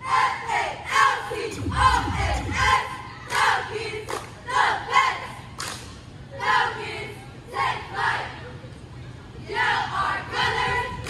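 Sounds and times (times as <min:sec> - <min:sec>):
low thump: 0:01.5 - 0:03.1.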